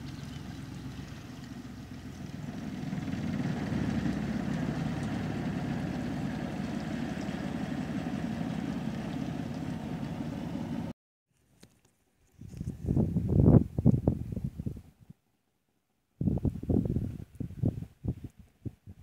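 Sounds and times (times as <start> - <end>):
small boat engine running: 0.0 - 11.0.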